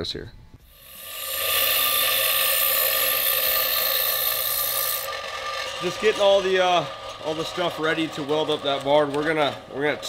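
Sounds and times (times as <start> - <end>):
motor whine: 0.6 - 5.5
high grinding hiss: 0.6 - 7.1.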